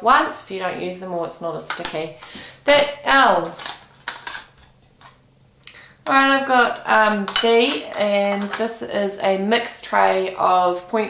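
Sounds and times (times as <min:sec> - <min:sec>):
plastic cases clicking: 0:01.7 - 0:05.2, 0:07.0 - 0:08.7
plastic cases rustling: 0:01.7 - 0:05.2, 0:06.0 - 0:08.8.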